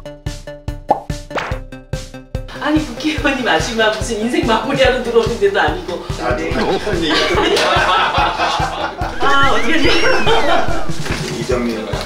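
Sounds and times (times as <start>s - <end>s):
light bouncy background music: 0.0s - 12.0s
rising pitch sweeps: 9.1s - 11.2s.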